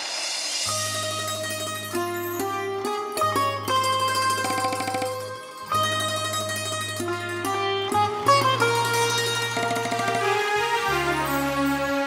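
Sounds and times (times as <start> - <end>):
sitar plucked melody: 0.7 - 12.0.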